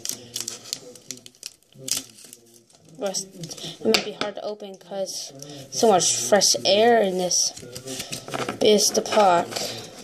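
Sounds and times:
foil pack crinkling: 0:00.0 - 0:03.2.

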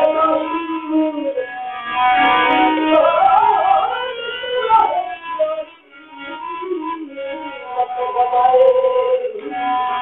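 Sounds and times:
ornamented vocal melody: 0:00.0 - 0:10.0.

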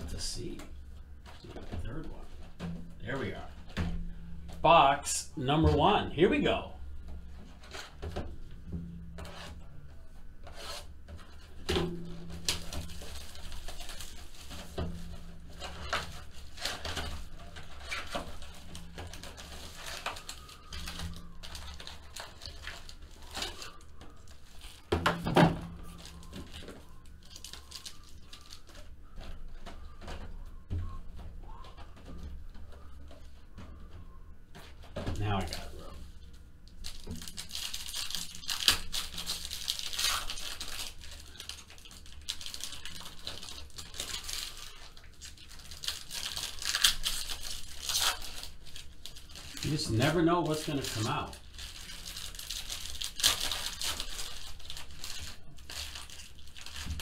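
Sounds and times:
cardboard and wrapper tearing: 0:10.4 - 0:30.0, 0:36.7 - 0:57.0.

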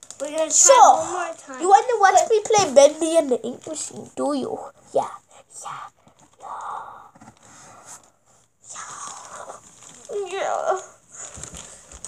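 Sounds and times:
child voiced sound: 0:00.2 - 0:03.3, 0:10.1 - 0:11.0
child whispering: 0:03.7 - 0:07.2, 0:08.7 - 0:11.0.

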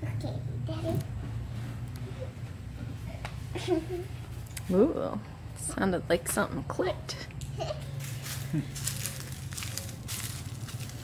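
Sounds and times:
footsteps crunching on dry leaves: 0:07.8 - 0:11.0.

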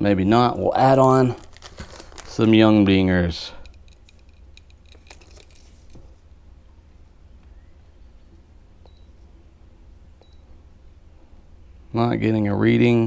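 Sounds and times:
plastic bag crinkle: 0:00.8 - 0:02.9, 0:04.9 - 0:06.0.

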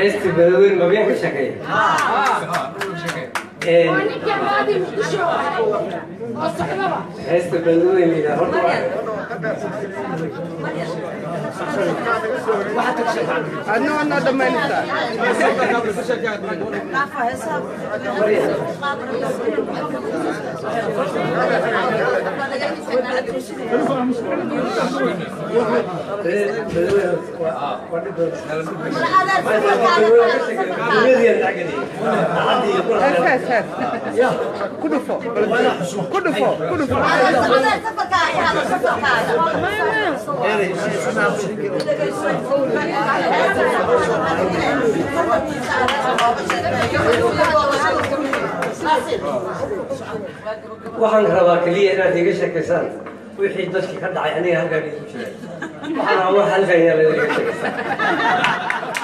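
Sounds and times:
indistinct chatter of people: 0:00.0 - 0:59.0.

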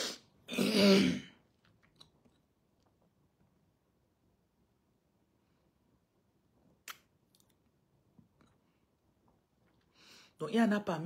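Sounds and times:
woman clearing her throat: 0:00.5 - 0:01.4.

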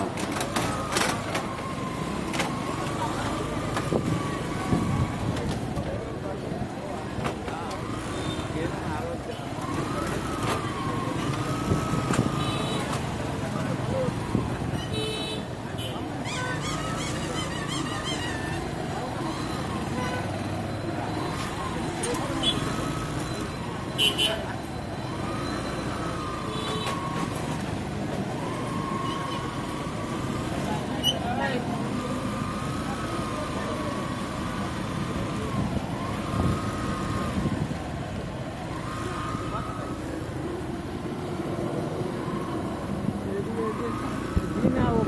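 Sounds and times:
vehicle engine and road noise: 0:00.0 - 0:45.0
car horn beep: 0:12.2 - 0:13.0, 0:14.7 - 0:16.0, 0:19.8 - 0:20.5, 0:23.8 - 0:24.5.

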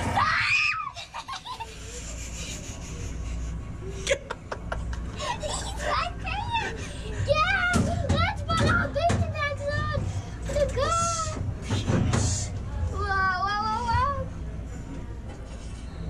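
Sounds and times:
children making playful sounds: 0:05.2 - 0:14.3.

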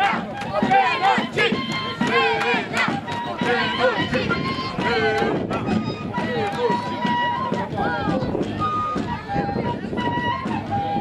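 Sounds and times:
crowd noise: 0:00.0 - 0:11.0
dancers calling and chanting: 0:00.0 - 0:11.0.

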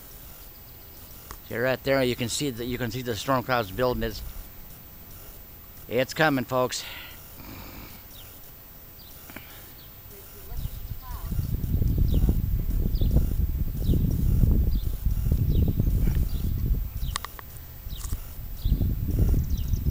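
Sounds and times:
faint high chirps: 0:00.0 - 0:19.9
wind buffeting microphone: 0:01.1 - 0:06.0, 0:10.1 - 0:19.9.

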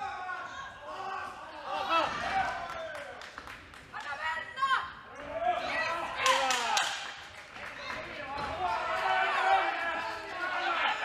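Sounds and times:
men shouting in a hall: 0:00.0 - 0:03.1, 0:08.4 - 0:11.0.

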